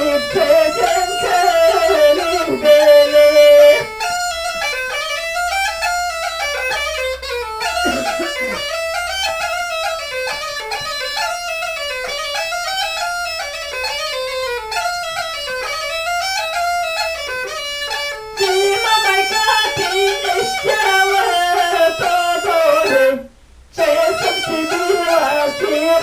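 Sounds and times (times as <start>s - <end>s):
woman singing: 0.0s - 3.9s, 18.4s - 26.0s
bagpipe folk melody: 0.0s - 26.0s.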